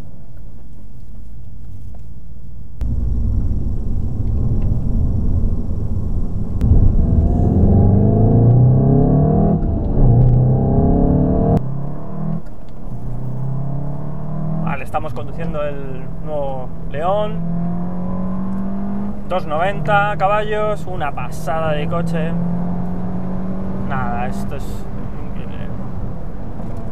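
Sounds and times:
car engine accelerating: 2.8 - 26.9.

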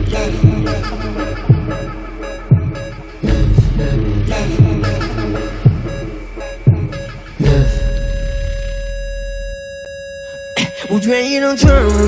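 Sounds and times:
low bass rumble: 0.0 - 9.7
steady electronic tone: 0.0 - 12.0.

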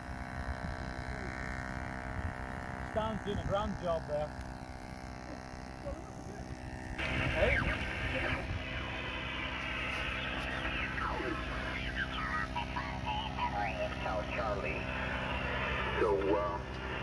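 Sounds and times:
radio voices from loudspeaker: 7.0 - 17.0.

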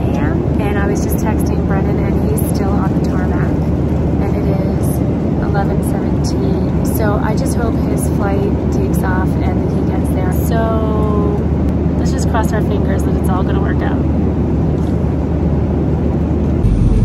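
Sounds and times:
airliner cabin roar: 0.0 - 17.0.

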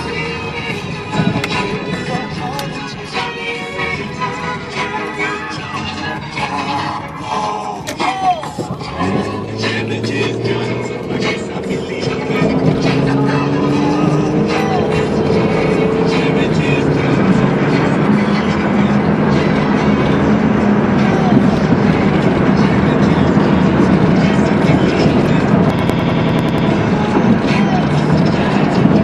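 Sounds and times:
music playing: 0.0 - 29.0
road and tyre noise: 0.0 - 29.0.

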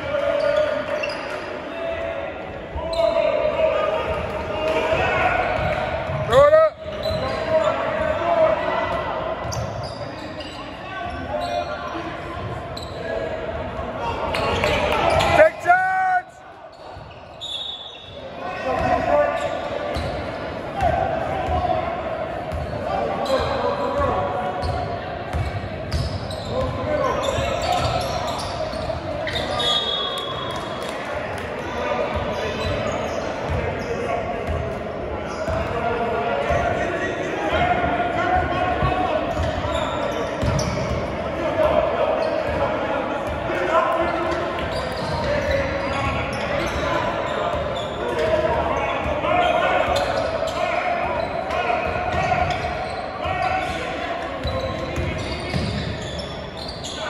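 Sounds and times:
people talking and shouting: 0.0 - 57.0
sneaker squeaks: 0.3 - 1.5, 2.8 - 3.4, 5.5 - 8.1, 9.4 - 13.3, 14.3 - 15.5, 16.6 - 21.6, 22.5 - 31.0, 31.6 - 34.6, 35.2 - 35.8, 38.5 - 41.1, 41.7 - 43.4, 44.0 - 57.0
loud shout: 2.8 - 9.3, 14.0 - 16.5.

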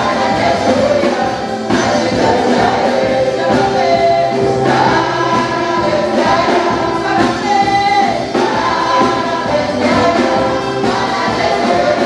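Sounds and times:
backing singers: 0.0 - 12.0
drum kit: 0.0 - 12.0
electronic keyboard: 0.0 - 12.0
woman singing into microphone: 0.0 - 12.0.

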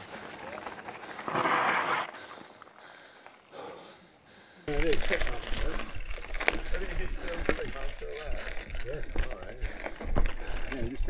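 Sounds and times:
bike tyres crunching on gravel: 0.0 - 3.5, 4.7 - 11.0
riders talking: 2.8 - 11.0.

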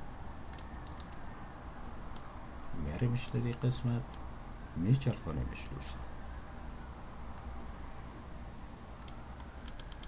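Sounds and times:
faint low hum: 0.0 - 10.0
computer keyboard keystrokes: 0.5 - 1.2, 9.0 - 10.0.

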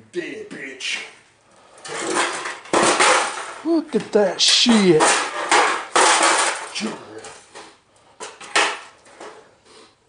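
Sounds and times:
metal scraping and rattling: 1.8 - 3.6, 4.4 - 9.4
loud metallic clatter: 4.5 - 6.8.

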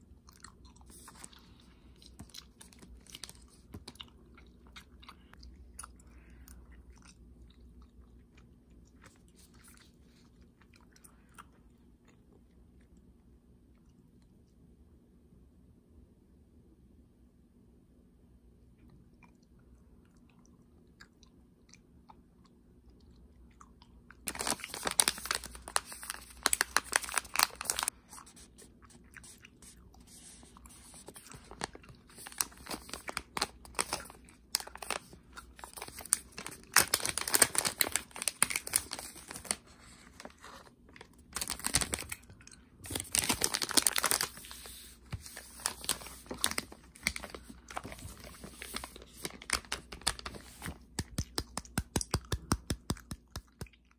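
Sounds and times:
plastic candy pouch crinkling: 24.2 - 28.5, 30.4 - 52.5.

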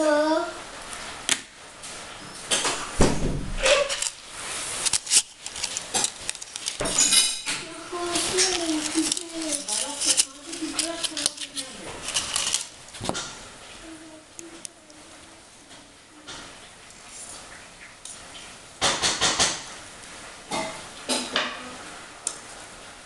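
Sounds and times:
plastic rustling: 2.5 - 15.9
plastic crinkling: 3.5 - 15.4
plastic packaging clicks: 3.6 - 13.3
person speaking: 4.8 - 13.1, 13.8 - 16.3.

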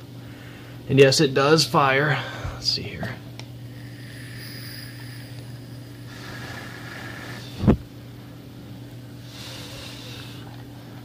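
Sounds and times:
electrical hum: 0.0 - 11.0
e-cig hissing: 3.7 - 7.8.

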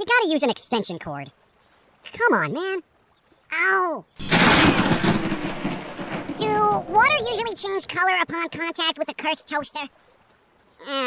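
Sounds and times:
person talking: 0.0 - 1.3, 2.1 - 2.8, 6.4 - 9.9
loud hissing rumbling noise: 4.2 - 7.8.

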